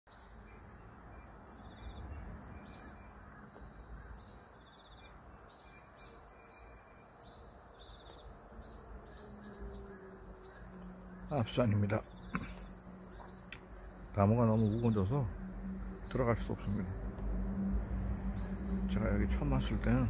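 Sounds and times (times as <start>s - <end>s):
insects hissing: 0.1s - 20.0s.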